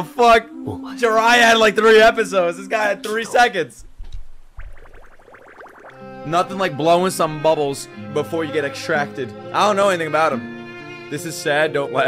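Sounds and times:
cartoon bubble blips: 4.6 - 6.1.

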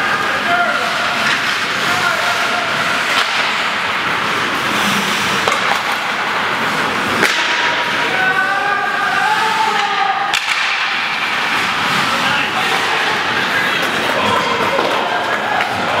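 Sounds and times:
hockey sticks cracking on puck: 0.1 - 16.0
skate blades hissing on ice: 0.5 - 7.3.

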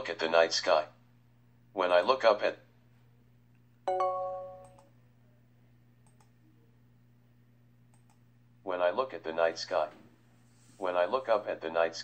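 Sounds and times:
computer chime: 3.9 - 4.9
faint mouse clicks: 6.0 - 6.4, 7.9 - 8.2
text-to-speech voice: 10.8 - 12.0.

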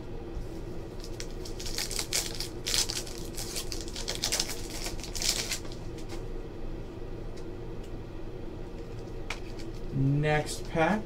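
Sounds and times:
steady low hum: 0.0 - 11.0
card wrapper crinkling and tearing: 1.0 - 6.2.

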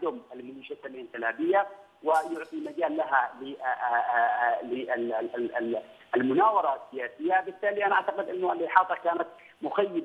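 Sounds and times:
man speaking over telephone: 0.0 - 10.0.

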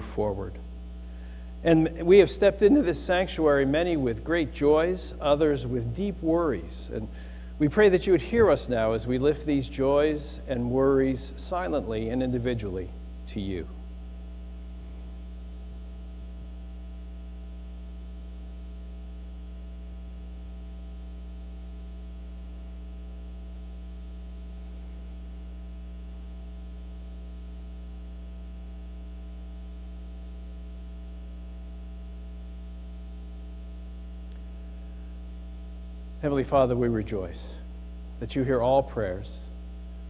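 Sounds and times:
electrical mains hum: 0.0 - 40.0.

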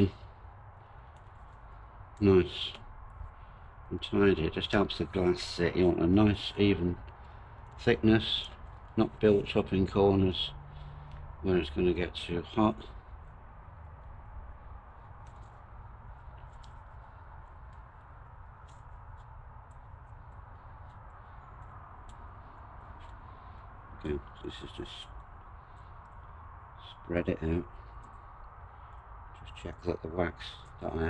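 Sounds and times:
steady low rumble: 0.0 - 31.0.

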